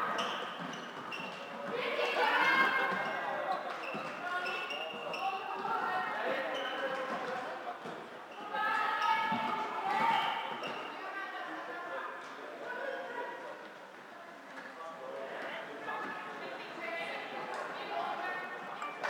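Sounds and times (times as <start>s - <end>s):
knocks and squeaks on court floor: 0.1s - 1.6s, 2.5s - 5.6s, 6.5s - 7.2s.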